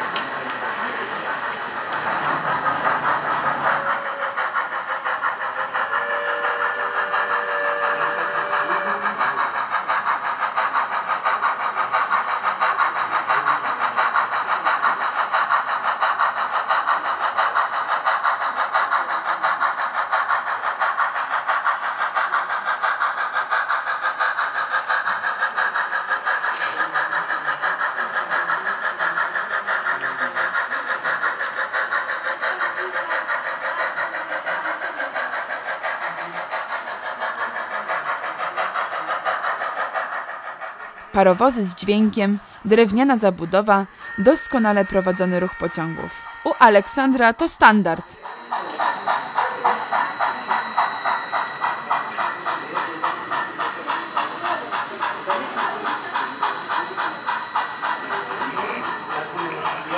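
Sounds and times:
model steam locomotive chuffs: 0.0s - 59.9s.

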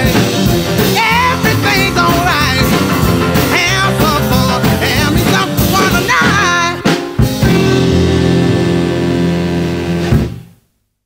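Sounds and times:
rock and roll band final chord: 0.0s - 10.5s.

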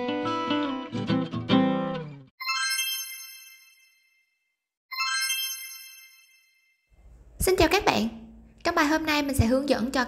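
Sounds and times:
bright bell-like chime: 2.4s - 6.9s.

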